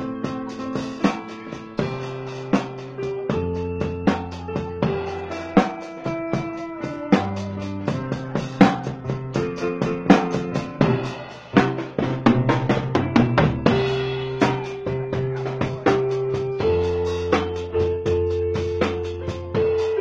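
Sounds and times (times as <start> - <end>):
bass line: 0.0 - 20.0
drum kit steady beat: 0.0 - 20.0
held melody notes: 0.0 - 20.0.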